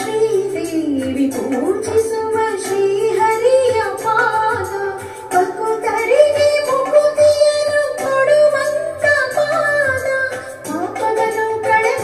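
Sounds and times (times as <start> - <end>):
instrumental accompaniment: 0.0 - 12.0
woman singing into a microphone: 0.0 - 12.0.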